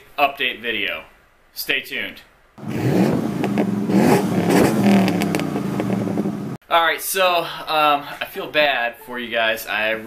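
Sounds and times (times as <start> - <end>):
vehicle engine revving: 2.6 - 6.6.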